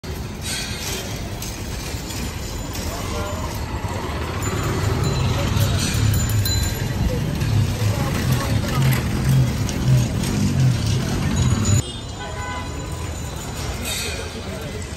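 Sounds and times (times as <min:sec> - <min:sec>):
motor traffic: 0:00.0 - 0:14.9
voices: 0:00.9 - 0:11.8.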